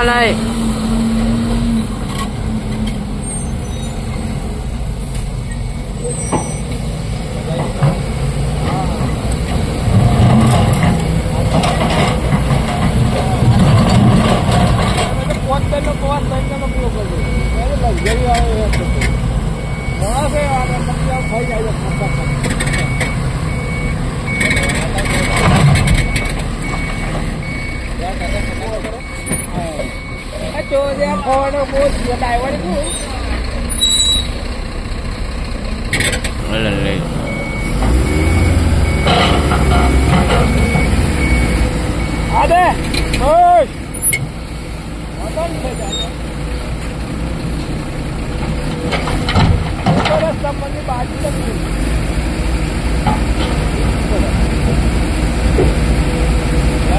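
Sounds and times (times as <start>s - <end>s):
diesel truck engine running: 0.0s - 56.9s
reversing alarm beeps: 15.8s - 24.7s, 26.0s - 31.3s, 37.3s - 42.5s.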